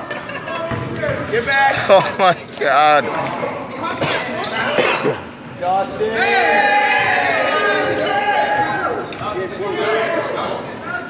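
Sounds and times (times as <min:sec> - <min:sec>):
players calling out: 0:00.2 - 0:11.0.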